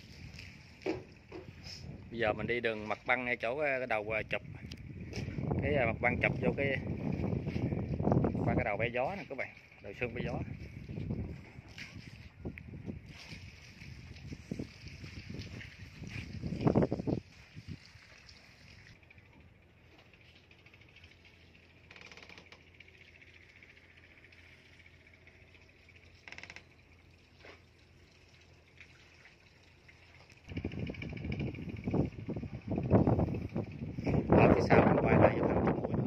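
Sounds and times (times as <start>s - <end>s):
wind buffeting microphone: 0.0s - 18.1s, 30.5s - 36.0s.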